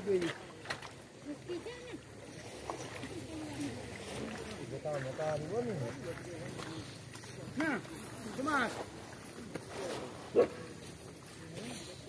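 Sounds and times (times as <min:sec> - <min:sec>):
shallow river flowing: 0:00.0 - 0:12.0.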